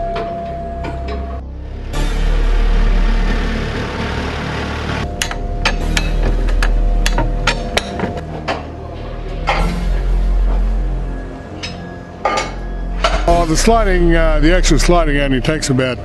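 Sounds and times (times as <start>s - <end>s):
background music: 0.0s - 16.0s
steel tools clanking on steel: 11.6s - 13.3s.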